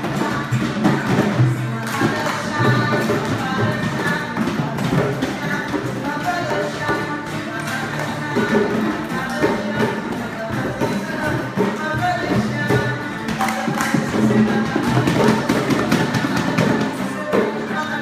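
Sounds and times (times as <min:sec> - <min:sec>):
acoustic guitar strumming: 0:00.0 - 0:18.0
group hand-drumming: 0:00.0 - 0:18.0.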